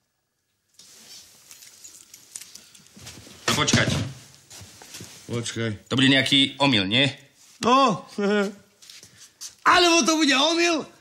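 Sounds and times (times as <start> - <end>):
soft rustling: 0.8 - 3.5, 4.1 - 6.0, 8.4 - 9.6
metal keys clicking: 1.5 - 3.0.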